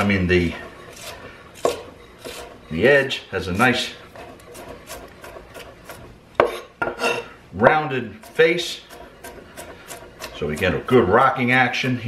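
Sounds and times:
knife chopping on wooden board: 0:01.0 - 0:02.5, 0:08.2 - 0:10.9.

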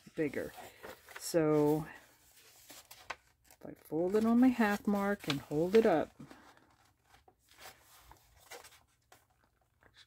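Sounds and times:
paper rustling and tapping: 0:02.7 - 0:07.3.

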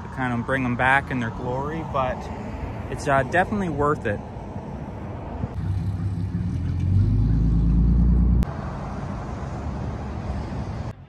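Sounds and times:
vehicle engine accelerating: 0:05.4 - 0:10.9.

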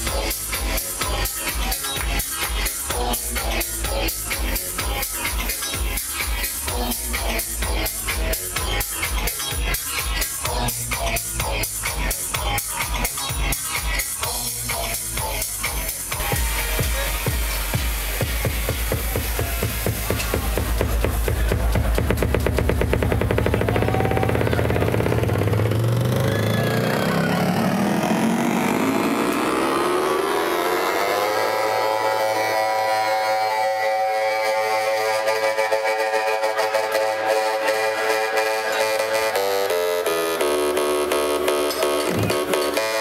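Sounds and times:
heavy fast beat: 0:00.0 - 0:29.2
electronic dance music: 0:00.0 - 0:43.0
synth tone rising in pitch: 0:16.3 - 0:43.0.

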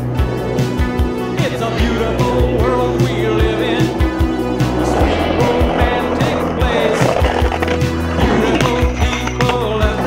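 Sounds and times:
skateboard wheels rolling on asphalt: 0:00.0 - 0:10.0.

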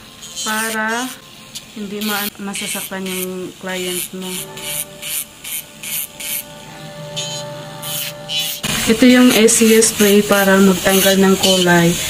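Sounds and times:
electric nail drill running: 0:00.0 - 0:12.0.

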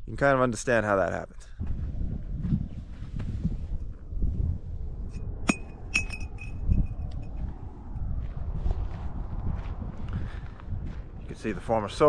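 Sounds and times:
low rumble of wind: 0:00.0 - 0:12.0
footsteps on dirt: 0:01.6 - 0:03.8, 0:07.4 - 0:12.0
sharp ringing clinks: 0:05.5 - 0:07.0.

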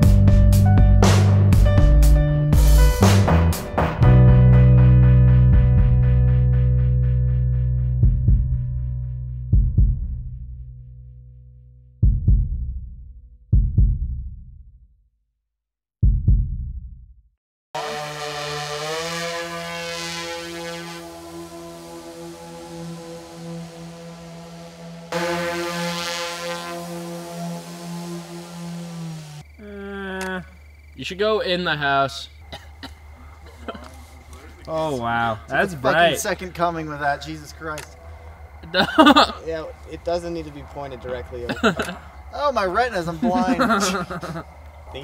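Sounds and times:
deep heartbeat-like thumps: 0:07.9 - 0:10.6, 0:12.0 - 0:14.7, 0:16.0 - 0:17.2
low sustained drone: 0:17.8 - 0:29.5.

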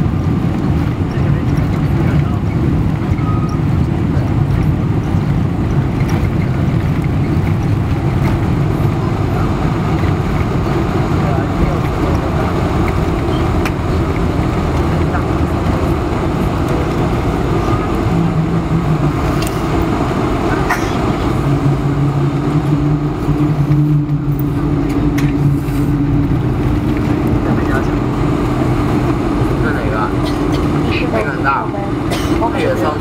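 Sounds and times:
jet engines rumbling: 0:00.0 - 0:33.0.

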